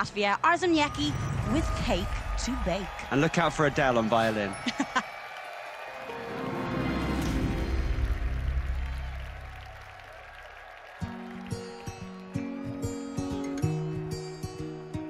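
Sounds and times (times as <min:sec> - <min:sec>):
arena crowd cheering: 0:00.0 - 0:15.0
acoustic guitar plucked and strummed: 0:11.9 - 0:15.0.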